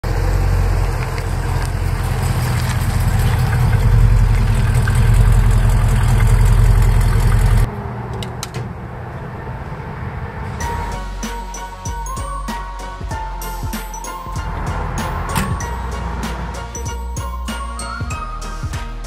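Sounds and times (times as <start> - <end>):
car engine idling: 0.0 - 7.7.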